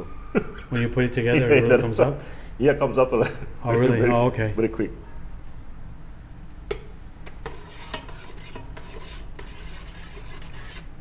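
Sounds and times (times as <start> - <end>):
sauce boiling in a pot: 7.3 - 11.0.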